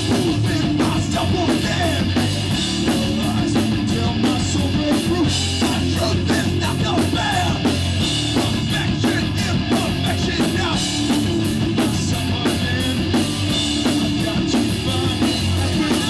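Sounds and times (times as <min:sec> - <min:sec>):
bass guitar: 0:00.0 - 0:16.0
distorted electric guitar: 0:00.0 - 0:16.0
driving drum beat: 0:00.0 - 0:16.0.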